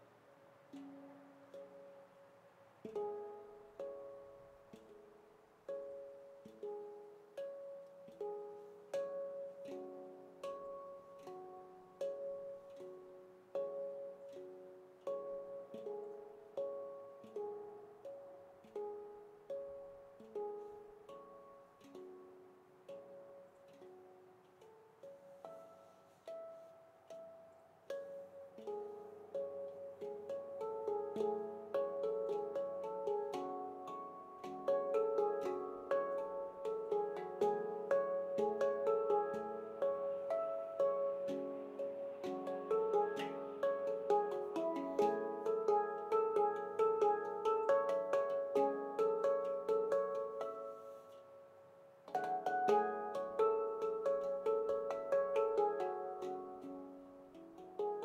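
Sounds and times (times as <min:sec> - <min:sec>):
handpan ringing notes: 0:00.0 - 0:58.0.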